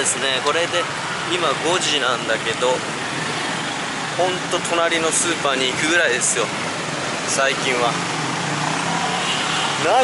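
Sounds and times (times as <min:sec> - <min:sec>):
motorbike and car engines: 0:00.0 - 0:10.0.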